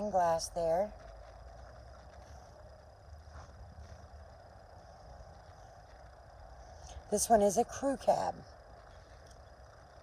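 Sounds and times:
low rumble: 0.0s - 10.0s
faint ticks: 8.4s - 10.0s.

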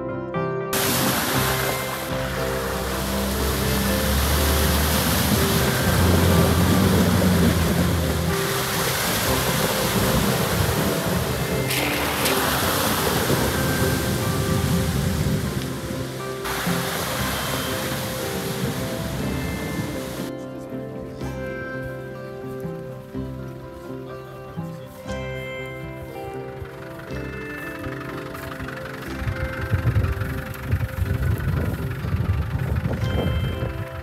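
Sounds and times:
background music: 0.0s - 34.0s
vehicles splashing through water: 0.8s - 20.3s, 26.8s - 34.0s.

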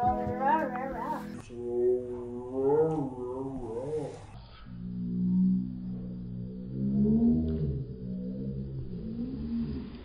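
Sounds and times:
faint background music: 0.0s - 5.5s.

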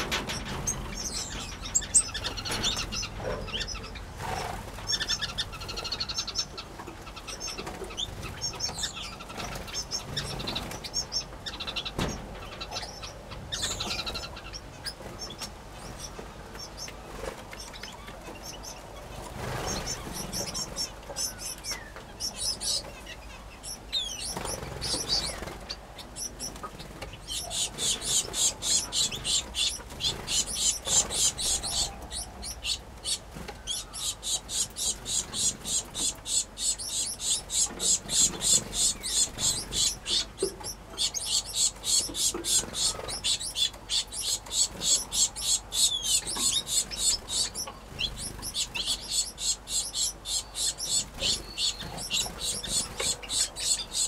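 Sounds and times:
finches and canaries chirping: 0.0s - 54.0s.

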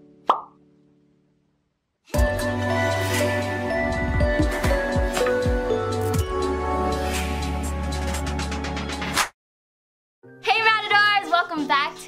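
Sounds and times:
cartoon pop: 0.2s - 0.6s.

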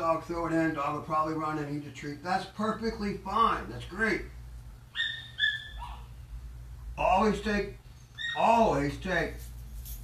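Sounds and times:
dog whimpering: 5.0s - 6.1s, 8.2s - 8.5s.

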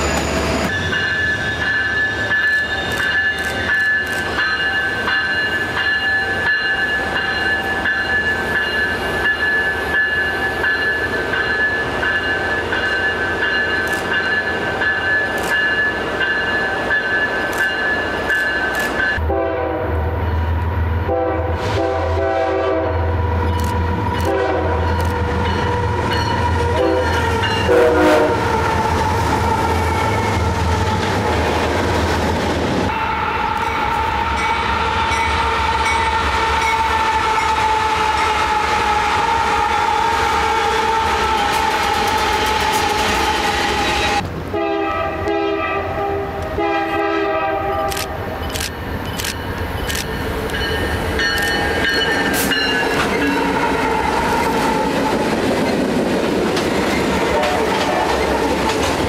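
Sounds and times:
locomotive high-pitched whine: 0.0s - 19.3s
train clanking: 0.0s - 19.4s, 21.8s - 44.3s, 47.8s - 59.0s
train horn: 19.2s - 31.2s, 32.9s - 48.2s, 52.3s - 55.4s, 57.0s - 58.8s.

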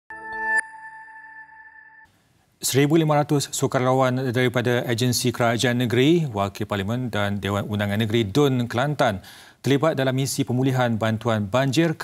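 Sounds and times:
high ringing tone: 0.1s - 2.1s
musical sting chord: 0.1s - 2.1s.

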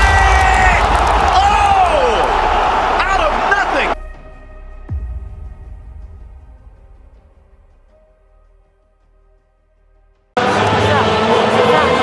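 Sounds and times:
loud voices: 0.0s - 4.0s, 10.4s - 12.0s
stadium crowd noise: 0.0s - 4.0s, 10.4s - 12.0s
deep drum-like hit: 4.9s - 8.0s.

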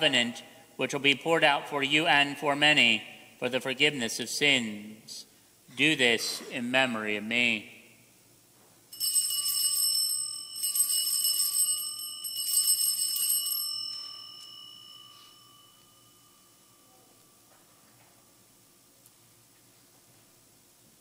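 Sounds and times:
altar bells ringing: 8.9s - 18.9s.

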